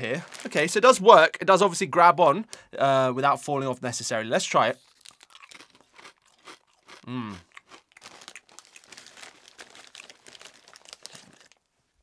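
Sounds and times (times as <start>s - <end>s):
chip bag crinkling: 0.0s - 0.8s, 4.8s - 11.7s.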